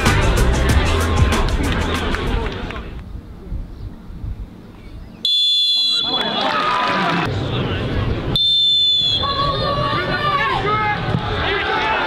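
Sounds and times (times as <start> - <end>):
hushed crowd: 0.0 - 3.5
referee whistle blast: 5.2 - 6.4, 8.4 - 9.5.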